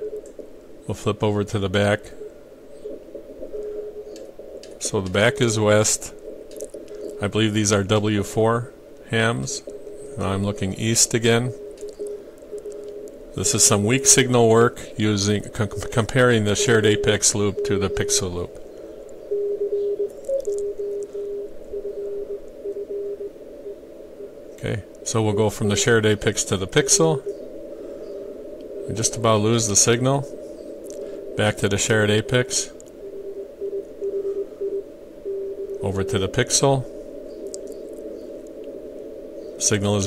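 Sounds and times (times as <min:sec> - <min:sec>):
weak morse code signal: 0:00.0 - 0:27.5, 0:28.1 - 0:38.8
radio band hiss: 0:00.0 - 0:40.0
morse code tone: 0:09.2 - 0:18.6, 0:19.3 - 0:23.3, 0:31.3 - 0:36.9.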